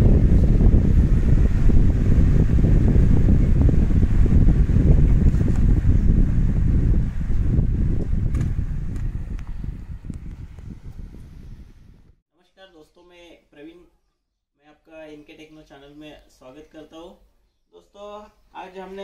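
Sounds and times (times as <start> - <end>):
fan wind rumble on microphone: 0.0 - 12.2.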